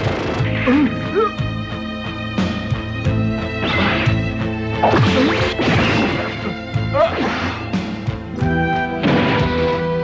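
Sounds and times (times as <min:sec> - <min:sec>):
dramatic background music: 0:00.0 - 0:10.0.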